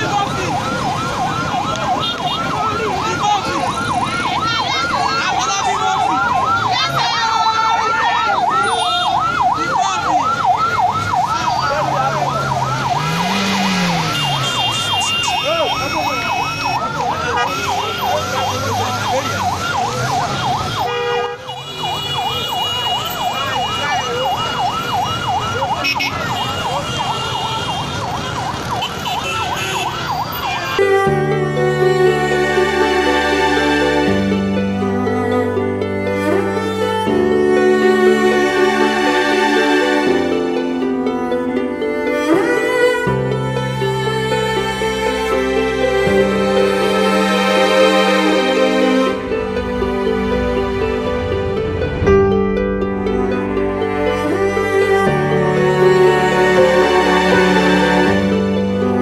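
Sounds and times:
siren yelping: 0.0 - 21.0, 21.8 - 31.0.

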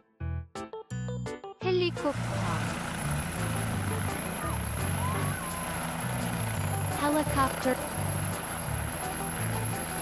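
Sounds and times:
helicopter rotor and turbine engine: 1.8 - 10.0.

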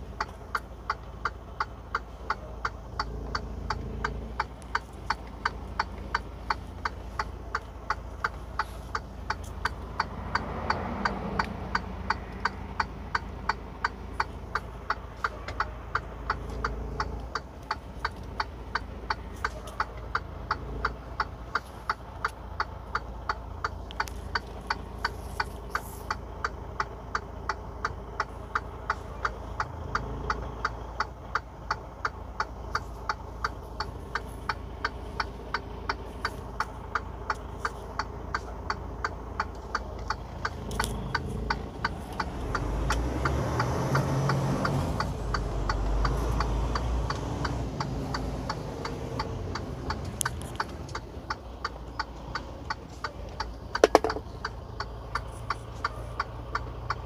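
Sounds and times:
truck engine idling: 0.0 - 57.0
turn signal ticking: 0.0 - 57.0.

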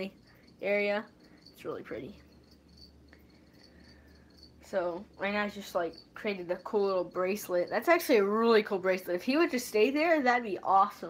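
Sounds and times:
crickets chirping: 0.0 - 10.0
low steady hum: 0.0 - 11.0.

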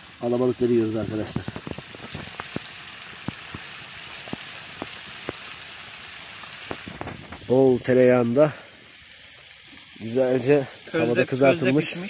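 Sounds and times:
sharp pops and crackles: 0.0 - 11.3
fish sizzling in a pan: 0.0 - 12.0.

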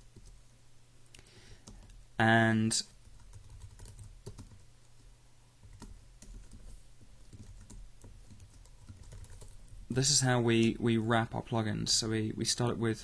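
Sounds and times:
low steady hum: 0.0 - 13.0.

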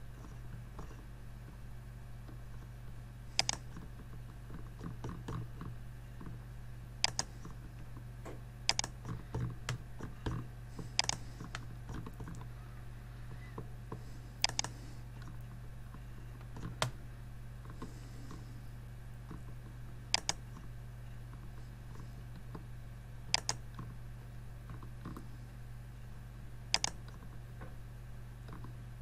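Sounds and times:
steady low hum: 0.0 - 29.0
computer mouse and keyboard clicks: 3.4 - 6.4, 7.0 - 12.5, 14.4 - 17.0, 19.2 - 22.6, 23.3 - 24.0, 26.7 - 27.4.

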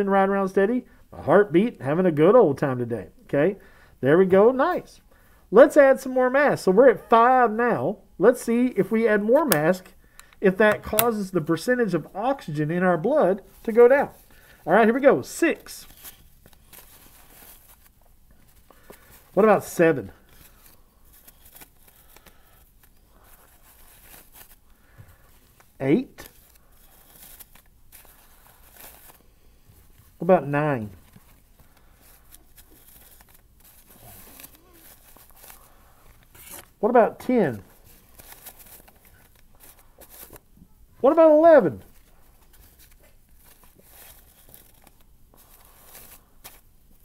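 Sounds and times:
paper mask rustling: 8.5 - 47.0.

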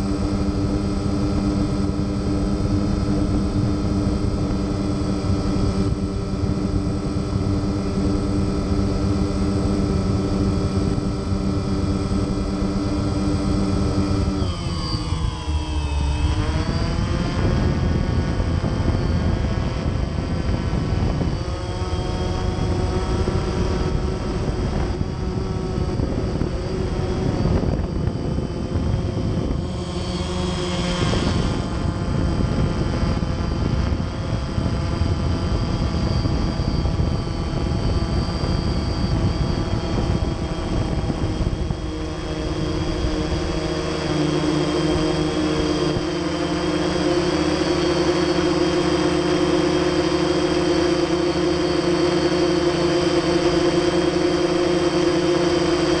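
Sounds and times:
drone motors and propellers hovering: 0.0 - 56.0.

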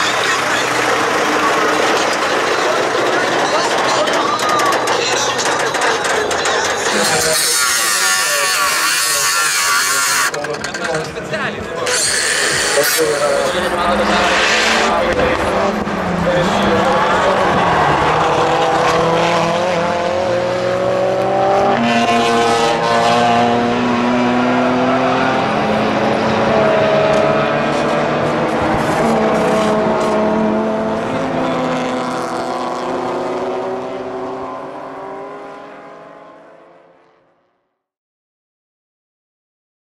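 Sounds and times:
car engines revving hard: 0.0 - 37.3.

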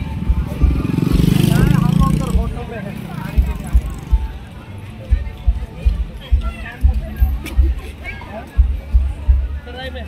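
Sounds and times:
people's voices: 0.0 - 10.0
motorcycle passing close by: 0.4 - 3.7.

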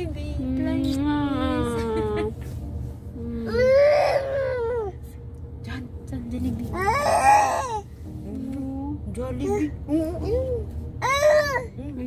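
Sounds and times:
low rumble in car cabin: 0.0 - 12.0.

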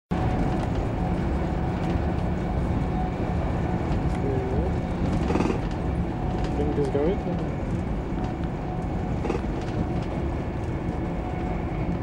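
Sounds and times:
train rumbling: 0.1 - 12.0.

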